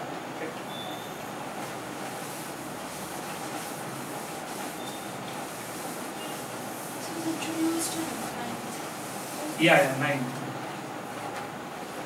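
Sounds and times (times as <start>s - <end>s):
room noise: 0.0s - 12.0s
duster wiping a chalkboard: 1.5s - 12.0s.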